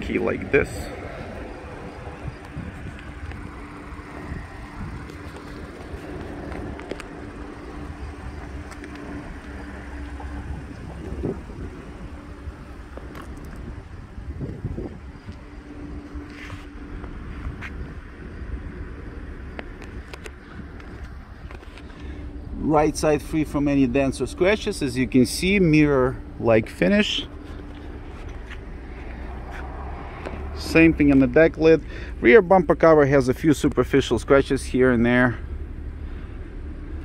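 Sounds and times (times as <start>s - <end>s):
wind rumble on microphone: 0.0s - 22.0s
steady low hum: 0.0s - 37.0s.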